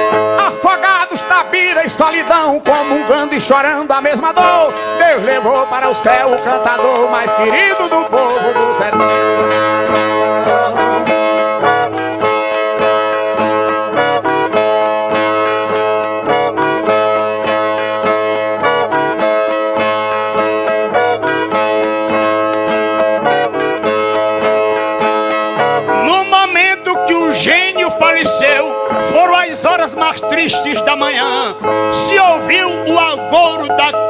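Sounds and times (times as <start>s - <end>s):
plucked string instruments: 0.0s - 34.0s
man singing: 0.4s - 11.8s, 26.0s - 34.0s.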